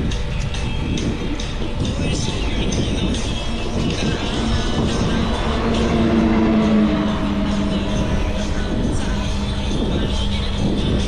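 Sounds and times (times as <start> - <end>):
low steady hum: 0.0 - 11.0
music: 0.0 - 11.0
wind buffeting microphone: 0.0 - 11.0.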